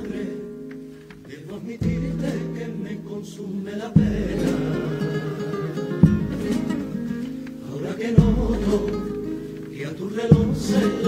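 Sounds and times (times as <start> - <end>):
guitars strumming chords: 0.0 - 11.0
bass drum stroke: 4.0 - 7.4, 8.2 - 9.6.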